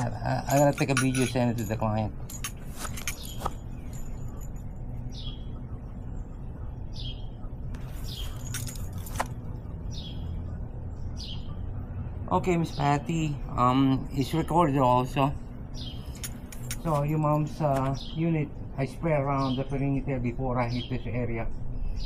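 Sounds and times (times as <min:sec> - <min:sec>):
bird chirping: 0:00.0 - 0:22.0.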